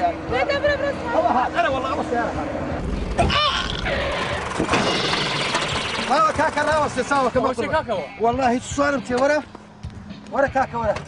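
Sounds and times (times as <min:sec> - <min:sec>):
truck engine running: 0:00.0 - 0:07.8
tyres rushing on loose ground: 0:04.0 - 0:07.6.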